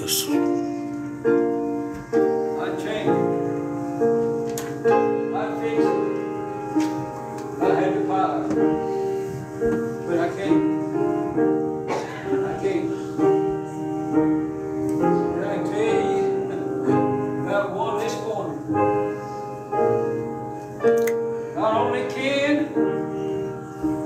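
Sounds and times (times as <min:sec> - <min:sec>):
piano playing a hymn: 0:00.0 - 0:24.0.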